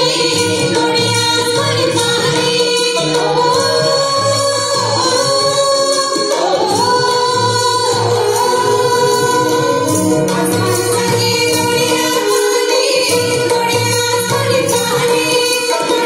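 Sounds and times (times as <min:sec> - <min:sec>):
instrumental accompaniment: 0:00.0 - 0:16.0.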